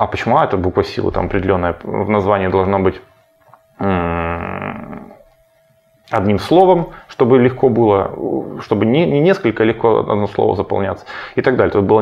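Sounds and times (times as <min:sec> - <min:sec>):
man's drawn-out hesitation sound: 0:00.9 - 0:03.0.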